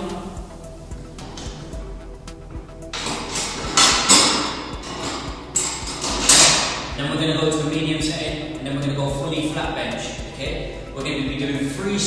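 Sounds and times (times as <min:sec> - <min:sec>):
background music: 0:00.0 - 0:12.0
weight bench knocking and clattering: 0:03.0 - 0:07.0.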